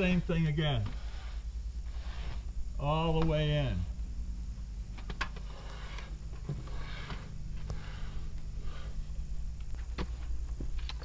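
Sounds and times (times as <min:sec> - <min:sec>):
low steady hum: 0:00.0 - 0:11.0
soft scraping: 0:00.6 - 0:02.8, 0:05.3 - 0:10.8.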